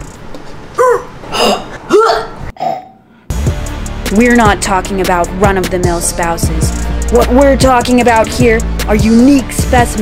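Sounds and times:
woman making throat noises: 0.8s - 3.1s
music: 3.3s - 10.0s.

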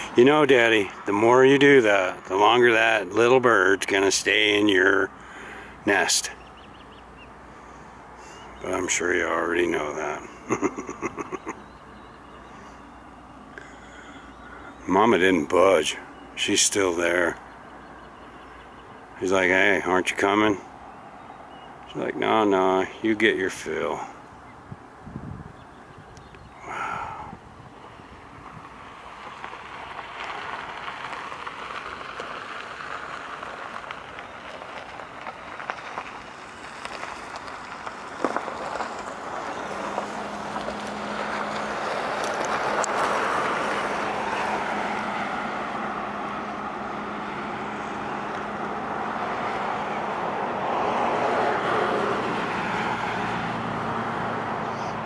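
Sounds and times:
vehicles passing: 0.0s - 55.0s.

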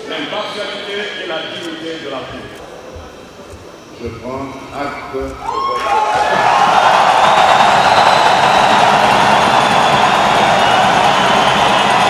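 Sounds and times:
audience applauding: 5.6s - 12.0s.

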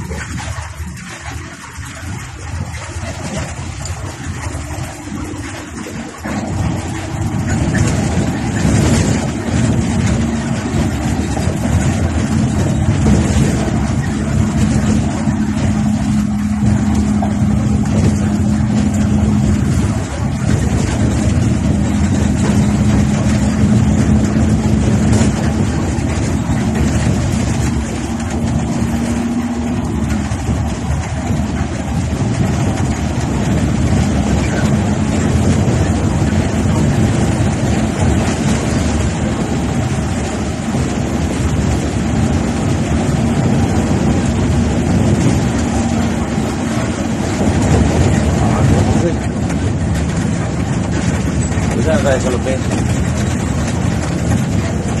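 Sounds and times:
bus engine drone and road noise: 0.0s - 55.0s
steady low hum: 0.0s - 55.0s.

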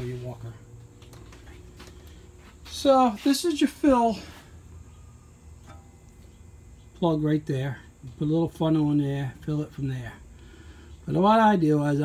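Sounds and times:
low hum of shop room tone: 0.0s - 12.0s.

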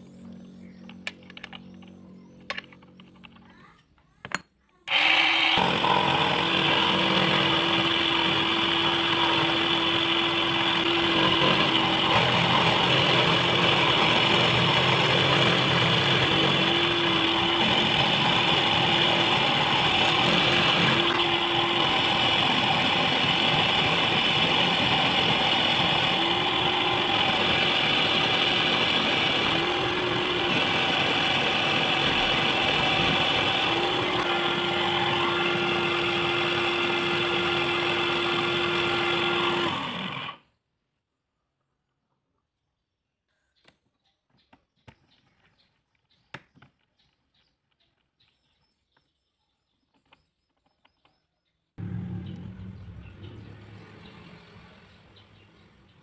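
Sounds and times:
lathe motor whine: 4.9s - 40.4s
low hum: 51.8s - 54.8s.

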